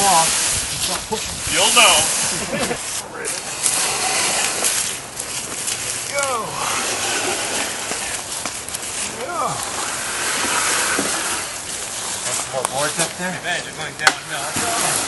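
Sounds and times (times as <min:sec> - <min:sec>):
wooden planks scraping: 0:00.0 - 0:15.0
people calling out: 0:06.0 - 0:08.3, 0:09.0 - 0:11.6.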